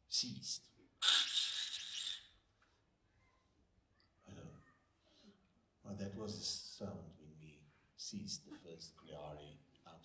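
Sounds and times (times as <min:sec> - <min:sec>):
man imitating engine seizing: 0:01.0 - 0:02.3.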